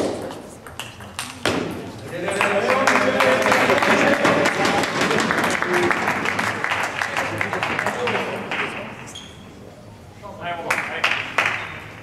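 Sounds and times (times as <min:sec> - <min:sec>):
table tennis ball bouncing and hit: 0:00.0 - 0:02.6.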